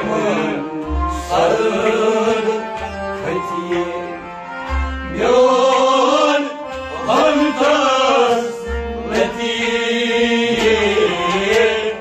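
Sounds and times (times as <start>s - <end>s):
harmonium drone: 0.0s - 12.0s.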